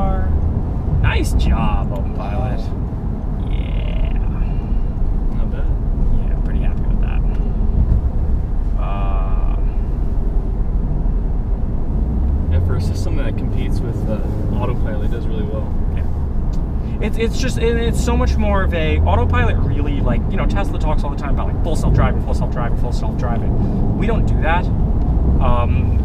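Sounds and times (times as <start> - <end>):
car cabin road and engine noise: 0.0 - 26.0.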